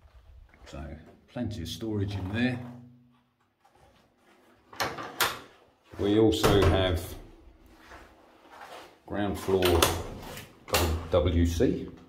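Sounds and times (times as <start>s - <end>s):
wooden door shutting and latching: 4.7s - 5.5s, 9.6s - 11.1s.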